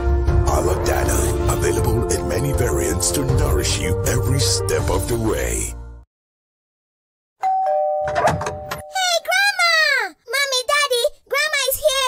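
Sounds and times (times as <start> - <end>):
two-tone doorbell chime: 7.4 - 9.1.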